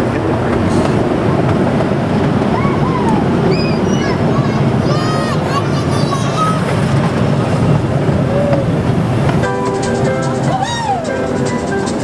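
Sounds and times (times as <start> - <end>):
train cars rumbling on track: 0.0 - 12.0.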